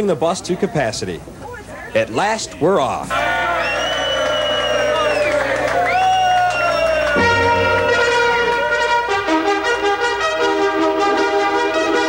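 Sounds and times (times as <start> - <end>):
trumpet-led brass music: 7.0 - 12.0.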